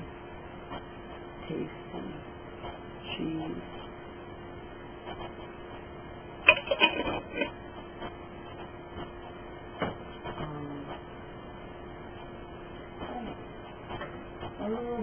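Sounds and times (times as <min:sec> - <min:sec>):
faint steady hum: 0:00.0 - 0:15.0.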